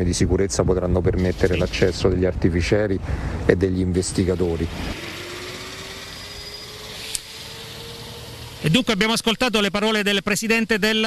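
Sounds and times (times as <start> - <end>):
outdoor background noise: 0.0 - 11.0
vehicle engine hum rising: 4.4 - 9.0.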